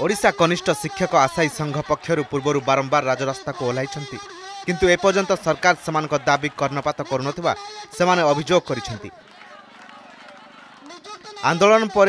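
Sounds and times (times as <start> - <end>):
murmur of crowd voices: 0.0 - 12.0.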